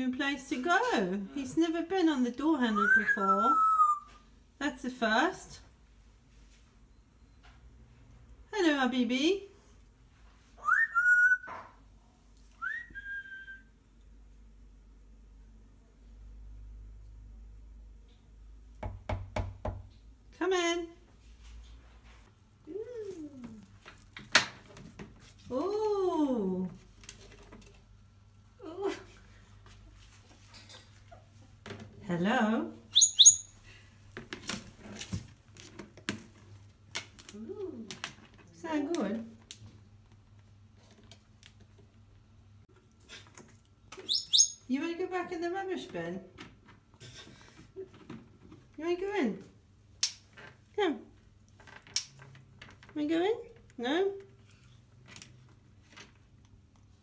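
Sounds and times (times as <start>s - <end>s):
parrot calling: 2.7s - 4.1s, 10.6s - 11.7s, 32.9s - 33.6s, 44.0s - 44.7s.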